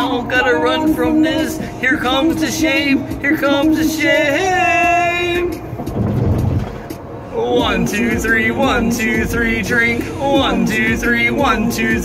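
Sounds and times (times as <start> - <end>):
backing music: 0.0 - 12.0
car cabin rumble: 0.0 - 12.0.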